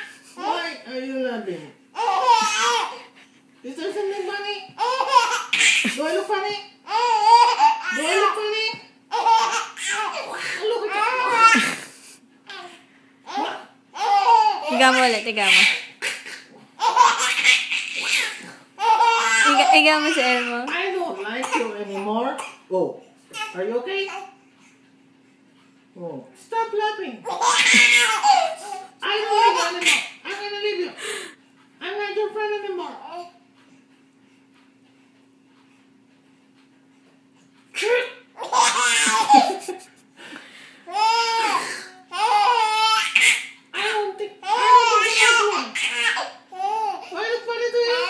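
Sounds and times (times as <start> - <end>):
baby laughing: 0.0 - 0.8, 2.0 - 3.2, 4.7 - 12.7, 13.3 - 22.6, 27.2 - 30.4, 37.8 - 40.0, 40.9 - 47.3.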